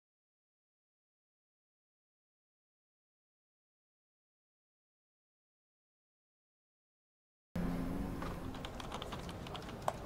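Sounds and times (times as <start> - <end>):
computer keyboard typing: 8.2 - 10.0.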